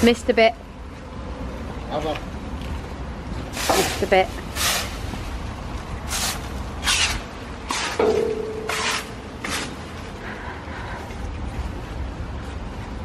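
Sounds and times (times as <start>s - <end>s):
broom sweeping leaves on paving: 3.5s - 5.4s, 6.1s - 8.0s.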